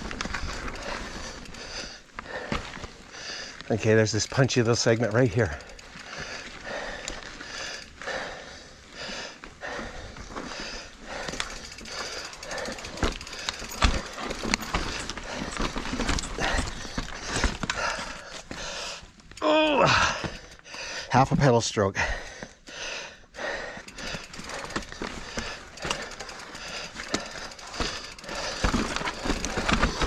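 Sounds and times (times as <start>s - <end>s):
bike clicking and knocking on rock: 0.0s - 8.0s, 9.9s - 20.9s, 23.7s - 30.0s
heavy uneven breathing: 0.0s - 21.2s, 21.9s - 30.0s
strained vocal grunt: 19.4s - 20.3s.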